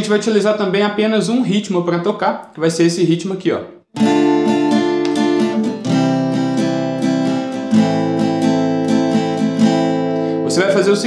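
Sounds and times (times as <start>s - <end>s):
acoustic guitar strumming: 4.0s - 11.0s.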